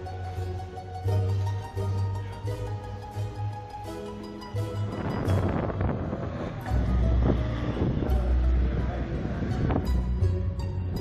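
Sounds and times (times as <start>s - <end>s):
faint music: 0.0s - 11.0s
distant voices: 1.7s - 11.0s
wind buffeting microphone: 4.2s - 11.0s.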